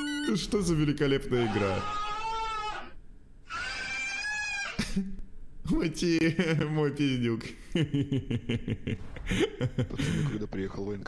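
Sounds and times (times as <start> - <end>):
caracal scream-like call: 1.5 - 4.8.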